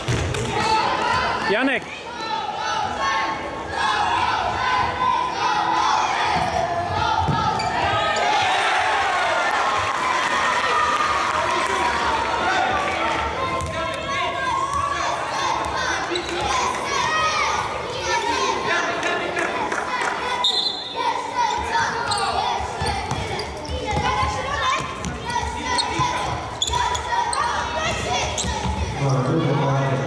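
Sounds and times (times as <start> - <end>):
ball kicked and bouncing on court: 0.0 - 0.6, 13.5 - 14.0, 22.8 - 26.4
players and spectators shouting: 0.0 - 30.0.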